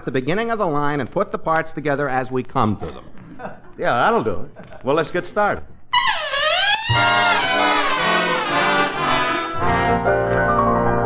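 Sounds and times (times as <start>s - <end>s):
brass-led orchestra playing: 6.9s - 11.0s.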